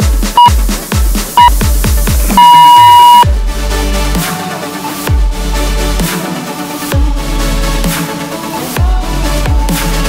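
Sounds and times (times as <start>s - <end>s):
electronic dance music: 0.0s - 3.3s
interval timer beeps: 2.4s - 3.3s.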